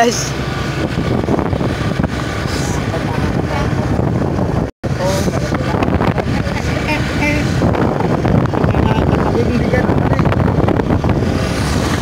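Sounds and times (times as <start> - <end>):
motorbike engine and road noise: 0.0 - 12.0
wind buffeting microphone: 0.3 - 12.0.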